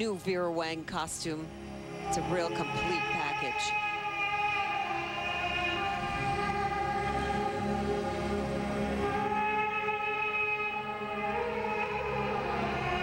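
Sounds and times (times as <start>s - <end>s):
slow orchestral string chords: 0.0s - 13.0s.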